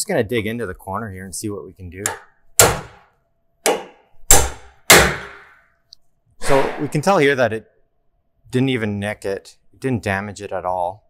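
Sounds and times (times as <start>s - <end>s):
hammer striking steel chisel: 2.0s - 5.6s.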